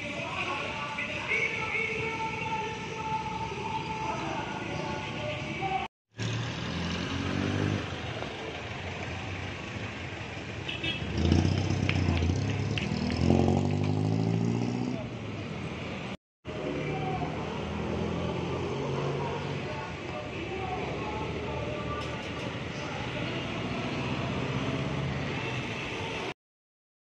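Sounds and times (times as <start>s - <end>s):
vehicle engines passing: 0.0s - 26.4s
engine pulling away: 6.2s - 15.1s.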